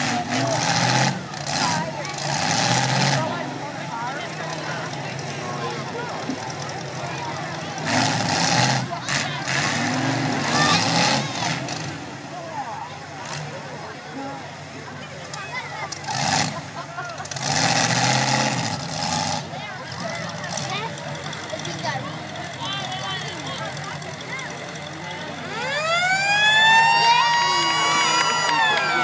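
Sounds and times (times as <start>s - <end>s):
car engines running: 0.0s - 29.0s
crowd noise: 0.0s - 29.0s.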